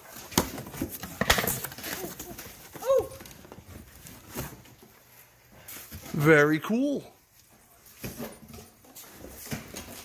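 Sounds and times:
vinyl records being handled: 0.0s - 6.0s.

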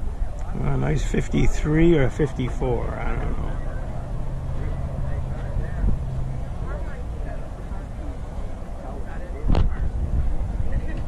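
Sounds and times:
faint background voices: 0.0s - 11.0s
vehicle engine humming: 0.0s - 11.0s.

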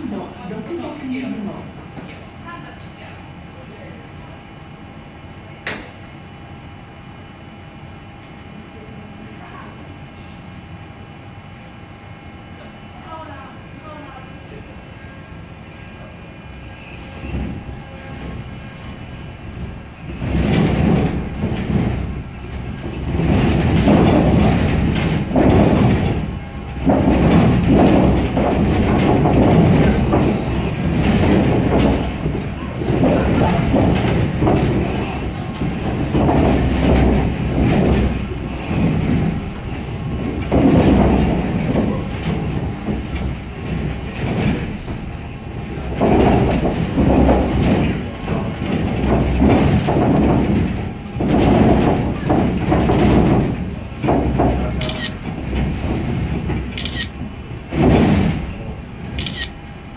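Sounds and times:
deep rumble and rattle: 9.6s - 59.9s.

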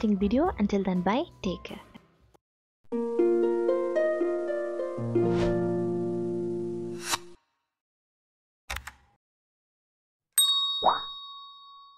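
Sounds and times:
bright bell ding: 10.4s - 11.9s.

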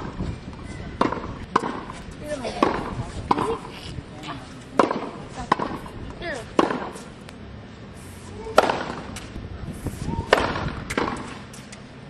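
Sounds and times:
tennis ball bouncing on court: 0.0s - 3.7s, 4.8s - 7.1s, 10.2s - 11.8s.

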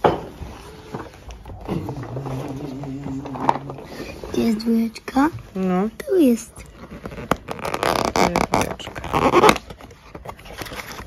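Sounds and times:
cardboard crackling and tearing: 6.6s - 11.0s.

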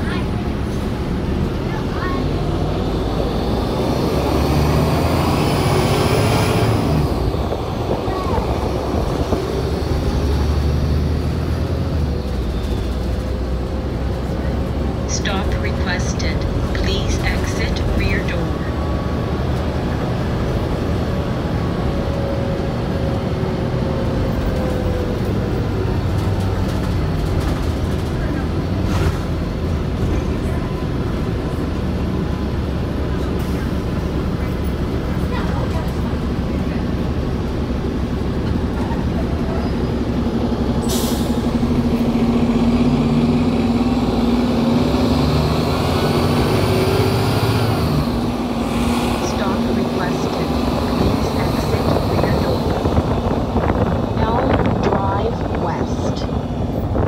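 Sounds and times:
bus diesel engine droning: 0.0s - 57.0s.

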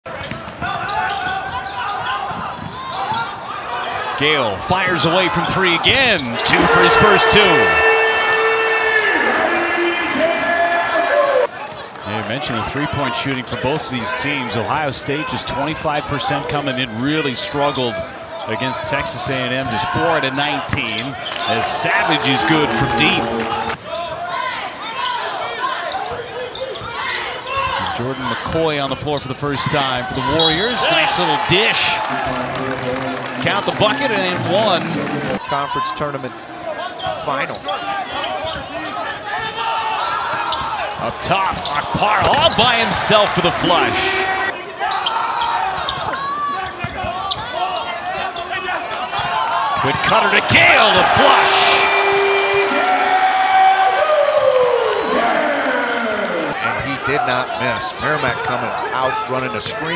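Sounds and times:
arena crowd shouting and chatter: 0.0s - 59.9s.

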